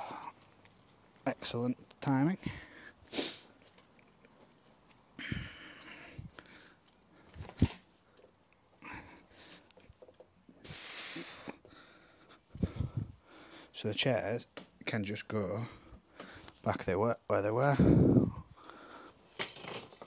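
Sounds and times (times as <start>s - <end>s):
person sniffing and breathing: 2.6s - 3.6s, 10.6s - 13.7s.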